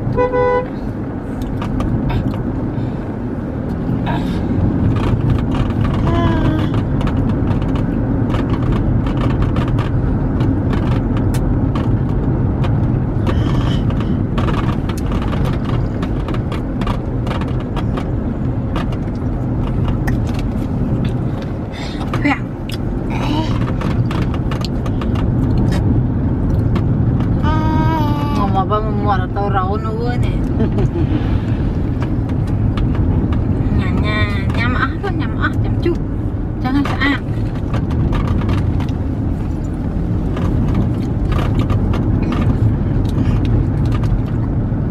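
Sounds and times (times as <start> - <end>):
car interior rumble: 0.0 - 44.9.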